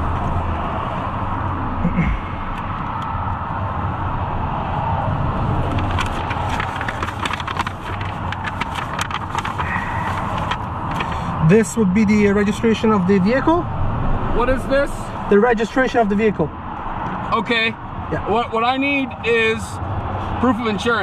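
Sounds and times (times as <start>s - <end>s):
low rumble of car engine: 0.0s - 21.0s
papers rustling: 5.6s - 11.4s.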